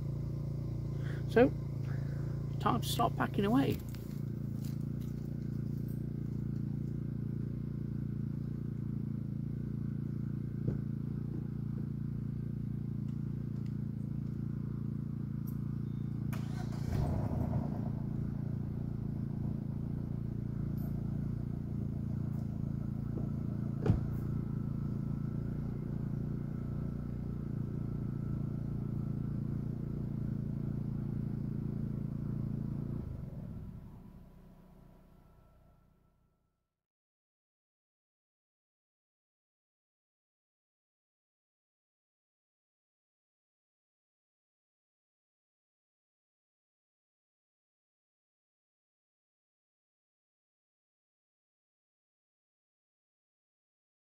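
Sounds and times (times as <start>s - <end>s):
small engine humming: 0.0s - 36.1s.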